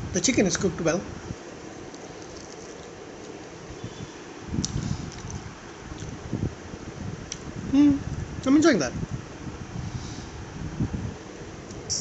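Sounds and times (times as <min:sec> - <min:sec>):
low room hum: 0:00.0 - 0:12.0
chewing crispy chicken: 0:01.8 - 0:03.6, 0:04.6 - 0:06.2.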